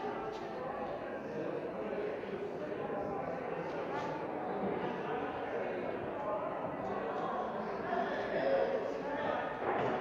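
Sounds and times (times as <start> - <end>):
indistinct voices in church: 0.0 - 10.0.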